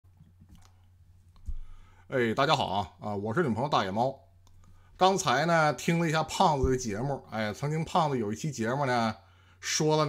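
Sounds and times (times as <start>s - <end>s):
low electrical hum: 0.1s - 10.0s.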